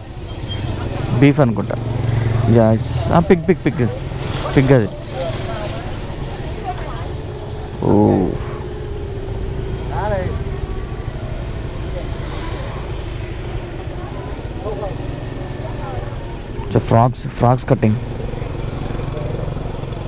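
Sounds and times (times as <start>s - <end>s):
market voices: 0.0s - 20.0s.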